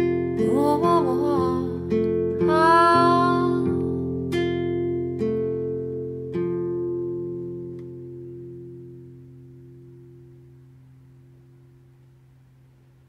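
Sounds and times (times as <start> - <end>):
acoustic guitar chords ringing: 0.0 - 13.0.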